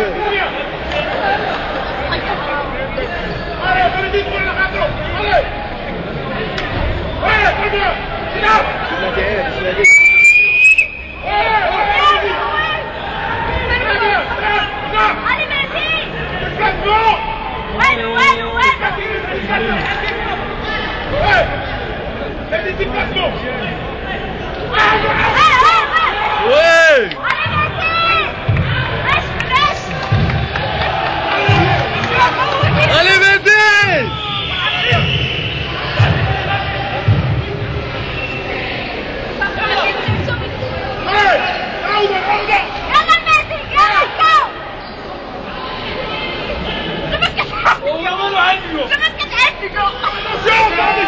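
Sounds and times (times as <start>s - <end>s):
crowd voices and shouts: 0.0s - 51.0s
loud shrill whistle: 9.8s - 11.3s, 34.2s - 35.8s.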